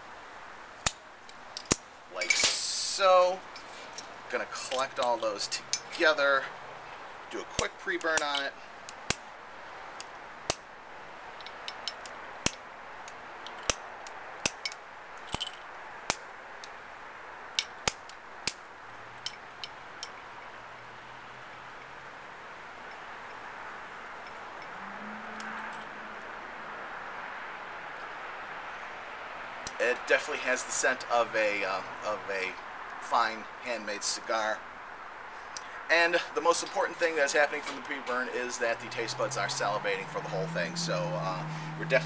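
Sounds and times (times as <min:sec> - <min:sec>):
steady outdoor hiss: 0:00.0 - 0:42.0.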